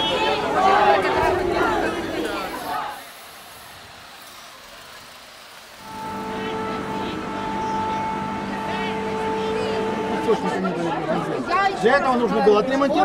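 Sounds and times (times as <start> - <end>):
street crowd noise: 0.0 - 13.0
car horn long blast: 5.8 - 10.9.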